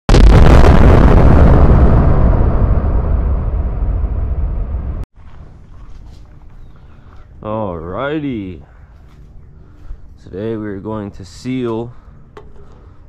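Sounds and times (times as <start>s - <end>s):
boom explosion sound effect: 0.1s - 5.0s.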